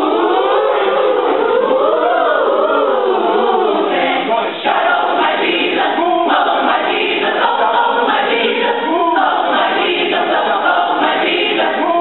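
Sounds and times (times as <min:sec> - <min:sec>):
mixed choir singing in harmony: 0:00.0 - 0:12.0.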